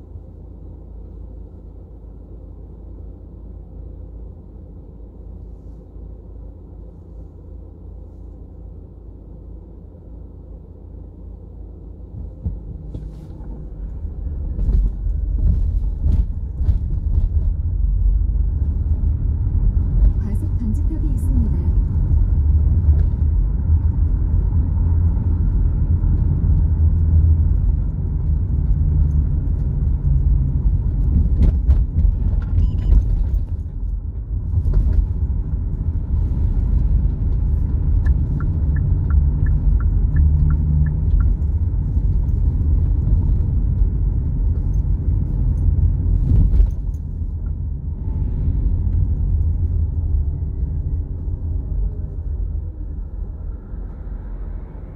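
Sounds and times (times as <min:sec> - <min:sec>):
car engine and road noise: 0:00.0 - 0:54.9.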